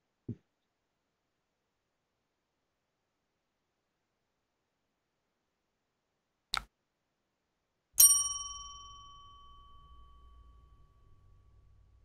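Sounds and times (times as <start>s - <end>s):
bell ding: 8.0s - 12.0s.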